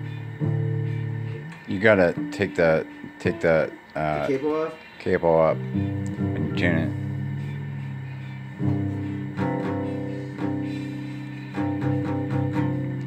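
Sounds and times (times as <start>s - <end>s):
guitar strings plucked: 0.0s - 4.4s, 5.3s - 13.0s.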